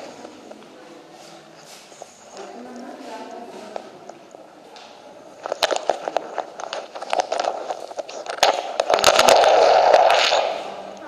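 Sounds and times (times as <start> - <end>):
sharp clicks and crackles: 3.8 - 11.0
steady scraping noise: 5.2 - 11.0.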